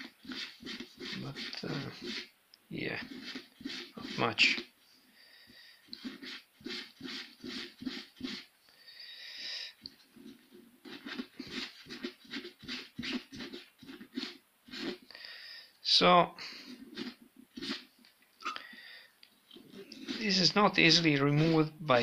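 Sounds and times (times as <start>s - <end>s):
wipe rubbing on glove: 0.0s - 4.7s, 5.9s - 8.5s, 10.0s - 15.0s, 16.6s - 18.0s, 19.7s - 21.6s.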